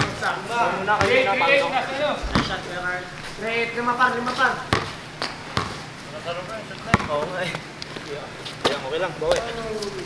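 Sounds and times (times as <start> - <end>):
basketball bouncing on hard court: 0.9 - 1.2, 4.7 - 5.8, 6.9 - 7.3.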